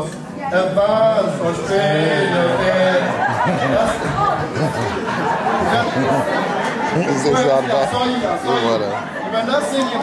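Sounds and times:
chatter: 0.0 - 10.0.

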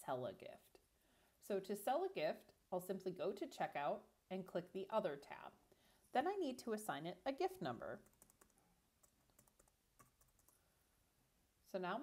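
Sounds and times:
computer keyboard keystrokes: 8.0 - 10.6.

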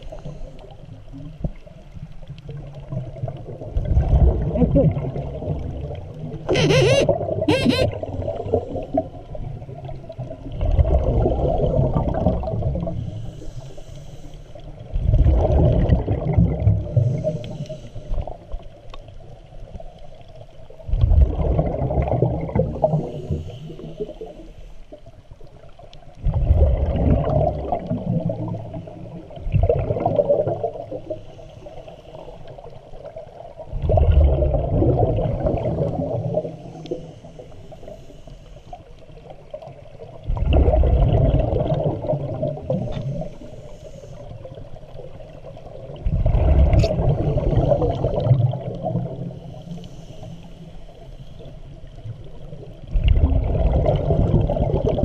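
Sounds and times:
rush of exhaled bubbles underwater: 0.0 - 13.6, 14.6 - 37.5, 38.8 - 50.2, 50.9 - 55.0.

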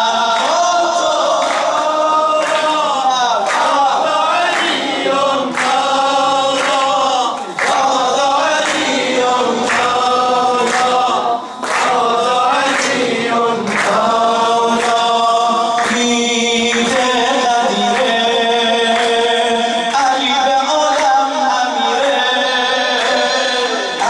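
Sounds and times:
men chanting a melody together: 0.0 - 24.0.

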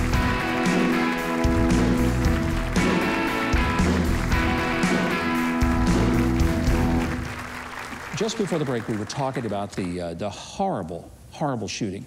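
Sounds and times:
live band playing instrumental: 0.0 - 7.4.

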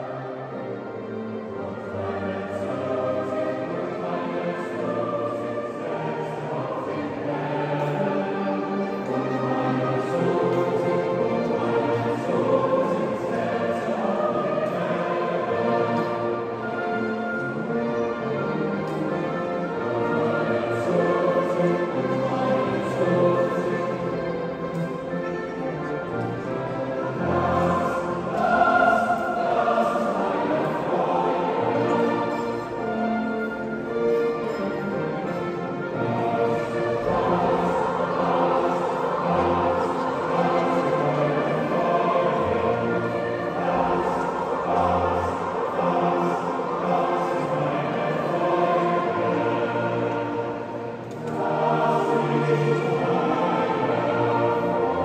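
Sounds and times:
ensemble singing polyphony in church: 0.0 - 55.0.

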